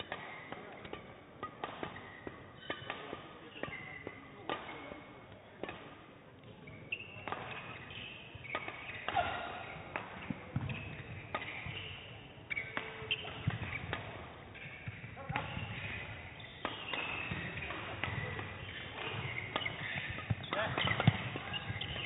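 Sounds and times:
sneaker squeaks on court floor: 1.9s - 5.2s, 5.8s - 22.0s.

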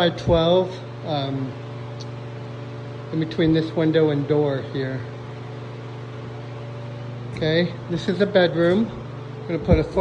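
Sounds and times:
low machine hum with hiss: 0.0s - 10.0s.

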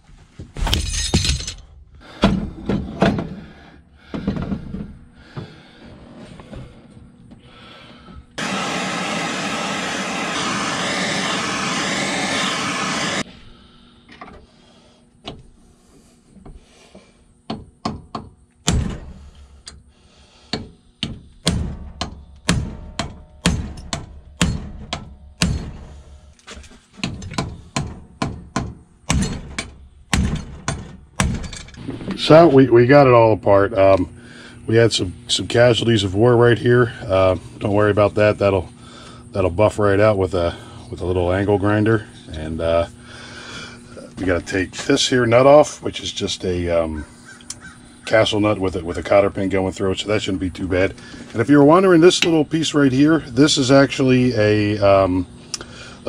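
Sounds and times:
loud rushing noise: 8.4s - 13.2s.

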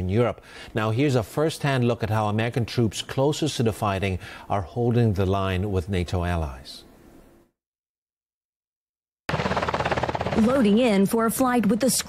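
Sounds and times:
helicopter rotor and engine: 9.3s - 11.1s.

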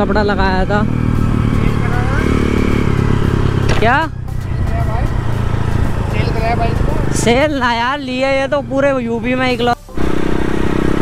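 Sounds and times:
dirt bike engine running: 0.0s - 11.0s.

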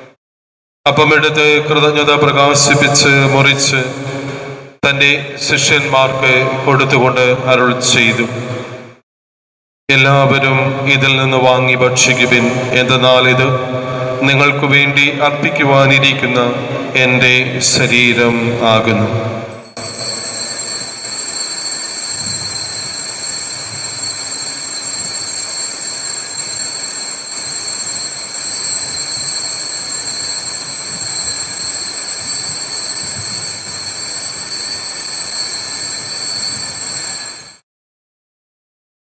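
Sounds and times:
altar bells jangling: 19.5s - 37.6s.

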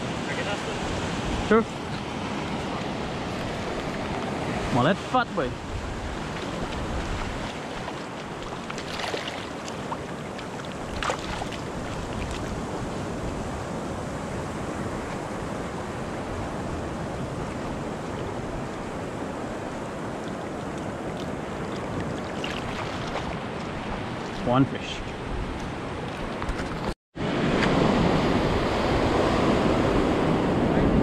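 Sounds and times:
small waves washing on shore: 0.0s - 31.0s
wind on microphone: 5.4s - 31.0s.

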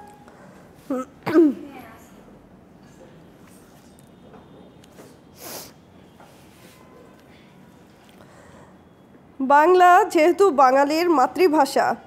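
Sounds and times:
woman clearing her throat: 0.9s - 1.7s.

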